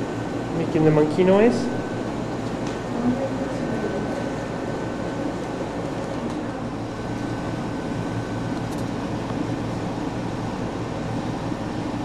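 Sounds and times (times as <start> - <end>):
indoor background hum: 0.0 - 12.0.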